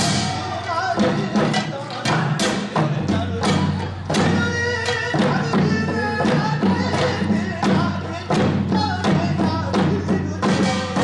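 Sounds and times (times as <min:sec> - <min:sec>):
barrel drum beats: 0:00.0 - 0:11.0
traditional accompaniment music: 0:00.0 - 0:11.0.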